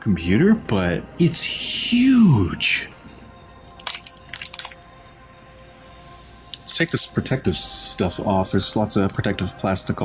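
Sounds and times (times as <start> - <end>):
plastic bag crinkling: 3.7 - 4.8.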